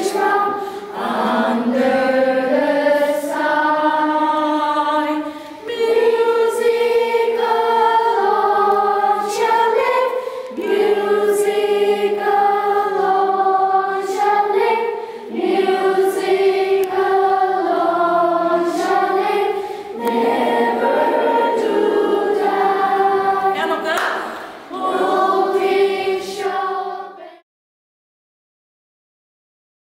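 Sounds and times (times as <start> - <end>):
choir singing: 0.0 - 27.4.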